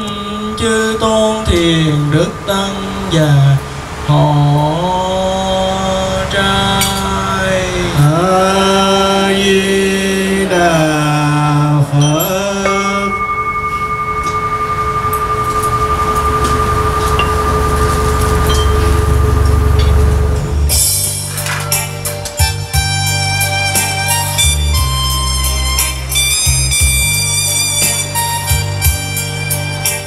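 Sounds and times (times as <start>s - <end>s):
steady held tone: 0.0s - 30.0s.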